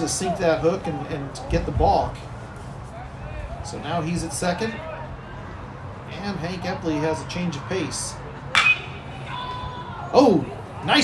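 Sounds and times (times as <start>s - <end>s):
metal bat hitting ball: 8.6s - 9.1s.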